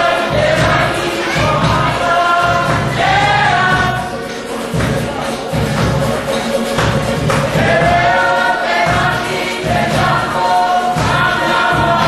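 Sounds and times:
group singing in harmony: 0.0 - 12.0
low regular beat: 0.0 - 12.0.

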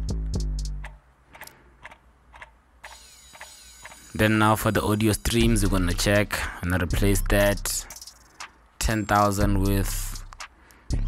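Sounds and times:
faint clicks: 0.8 - 4.0.

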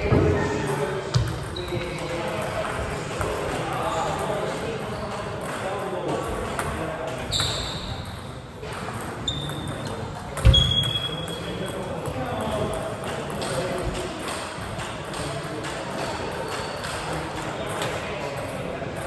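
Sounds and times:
murmur of voices: 0.0 - 19.0.

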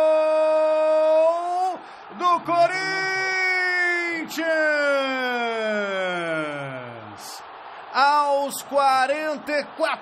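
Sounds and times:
commentator shouting goal: 0.0 - 6.8.

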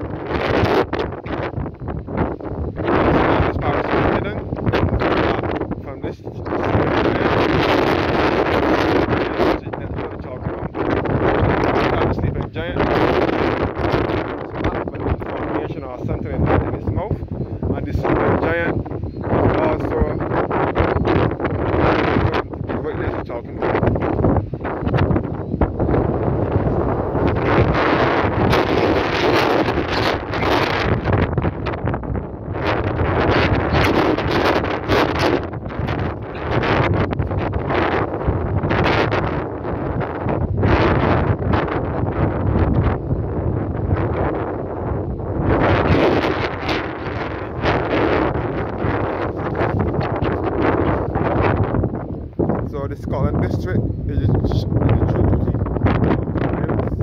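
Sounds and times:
strong wind buffeting microphone: 0.0 - 57.0.

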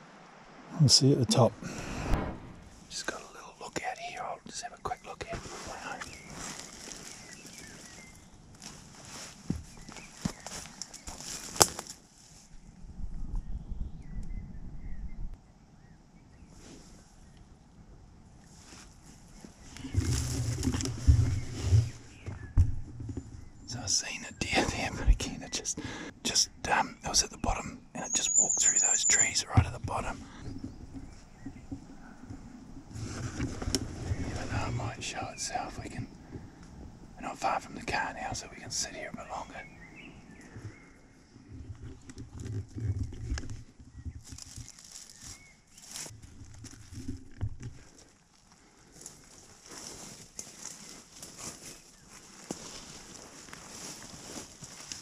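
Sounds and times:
thumps on microphone: 19.9 - 23.5.

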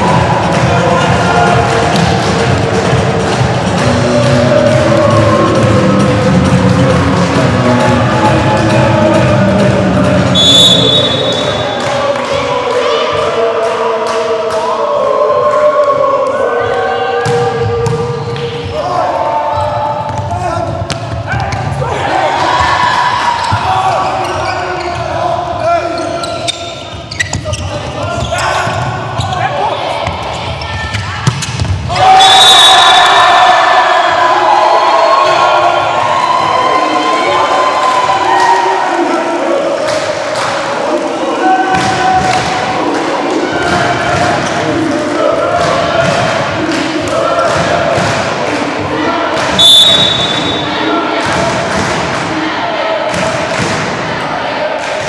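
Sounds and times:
players and spectators shouting: 0.0 - 55.0.

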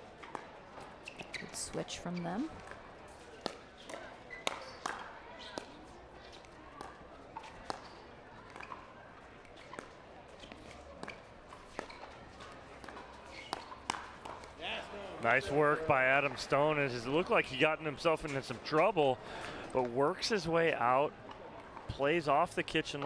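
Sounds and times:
low crowd murmur: 0.0 - 23.0
ball bouncing on hard court: 0.2 - 8.8, 9.6 - 14.6.

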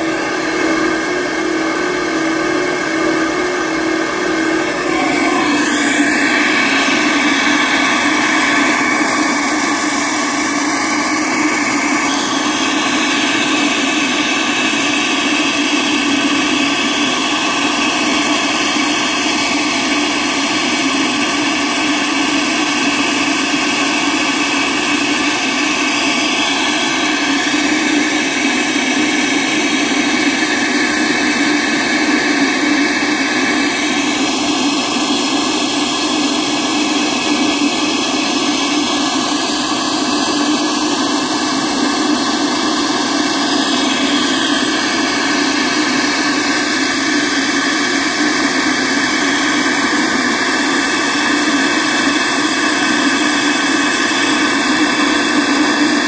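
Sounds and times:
flow bench air rush: 0.0 - 56.0.

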